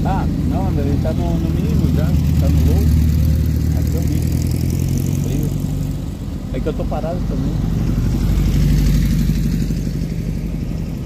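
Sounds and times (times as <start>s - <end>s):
dune buggy engine passing: 0.0s - 11.0s.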